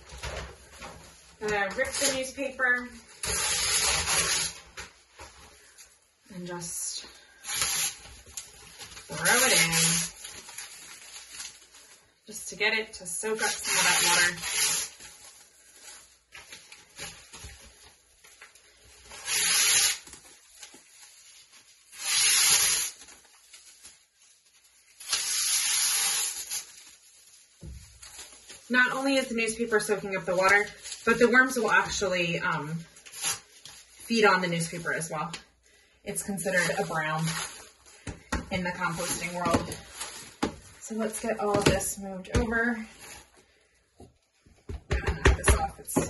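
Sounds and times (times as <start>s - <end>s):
newspaper tearing: 1.6s - 4.8s, 7.3s - 12.0s, 13.2s - 17.4s, 18.2s - 32.1s, 32.9s - 35.2s, 36.4s - 38.0s
soft paper rustles: 7.9s - 12.4s, 14.0s - 19.2s, 20.0s - 22.0s, 22.9s - 25.3s, 26.2s - 41.7s.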